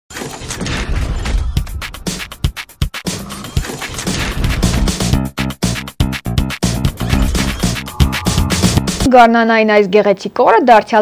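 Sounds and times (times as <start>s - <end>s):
sharp electronic beats: 5.6s - 9.2s.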